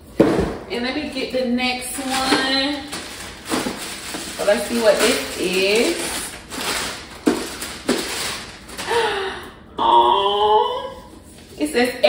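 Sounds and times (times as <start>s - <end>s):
plastic bag crinkling: 1.8s - 9.1s.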